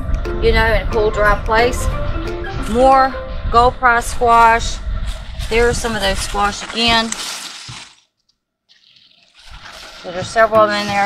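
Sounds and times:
leaves and vines rustling: 4.2s - 8.1s, 8.7s - 11.0s.

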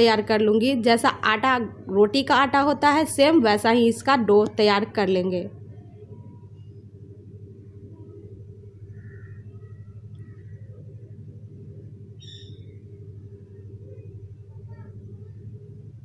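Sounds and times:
steady low hum: 0.0s - 16.0s
faint chirps: 5.6s - 16.0s.

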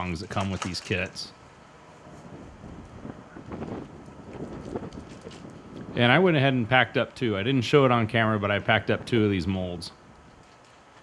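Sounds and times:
wind buffeting microphone: 2.0s - 10.5s.

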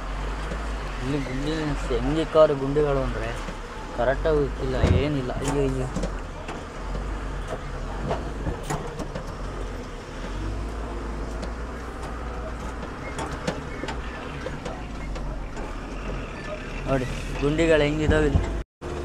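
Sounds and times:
diesel truck engine rumbling: 0.0s - 19.0s
clicks and rattles: 4.8s - 10.5s.

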